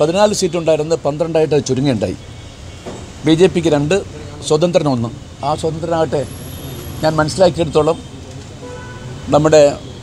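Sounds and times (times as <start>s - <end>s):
man speaking: 0.0s - 2.2s, 3.2s - 6.3s, 9.3s - 10.0s.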